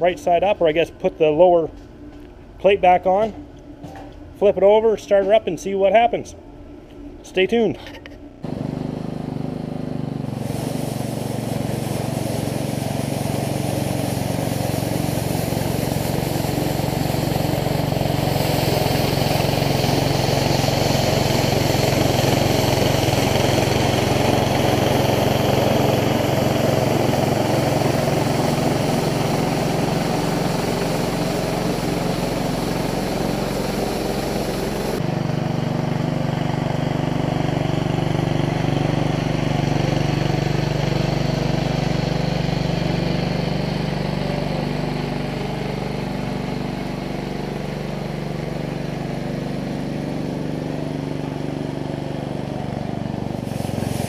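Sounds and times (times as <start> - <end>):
small engine running: 8.4 - 54.0
hiss: 10.2 - 35.0, 53.3 - 54.0.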